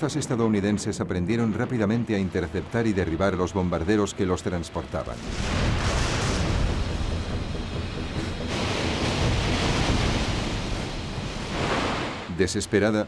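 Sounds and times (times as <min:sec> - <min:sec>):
low rumble: 0:05.2 - 0:12.3
waves breaking over ship: 0:08.0 - 0:12.4.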